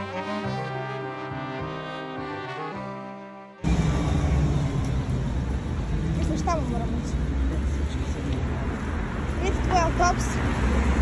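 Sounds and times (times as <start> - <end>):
passing cars rumbling: 3.6 - 11.0.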